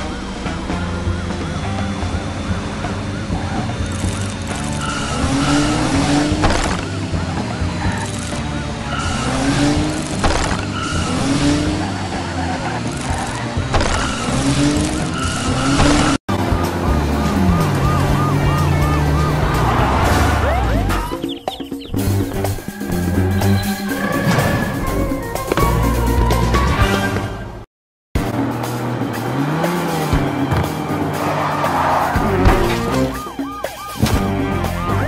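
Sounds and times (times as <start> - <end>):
background music: 0.0 - 27.6, 28.2 - 35.0
tyre skids and squeals: 0.2 - 27.6, 28.4 - 35.0.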